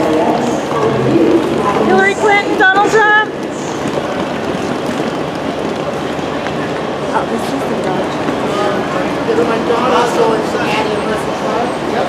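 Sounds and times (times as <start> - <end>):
indistinct voices talking low: 0.0 - 12.0
outdoor background noise: 0.0 - 12.0.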